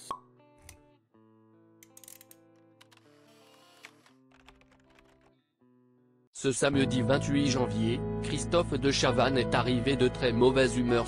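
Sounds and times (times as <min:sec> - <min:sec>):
light background music: 0:06.4 - 0:11.0.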